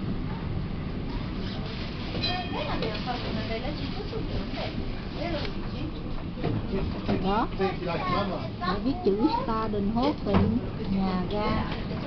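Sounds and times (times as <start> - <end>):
tram rumbling in motion: 0.0 - 12.0.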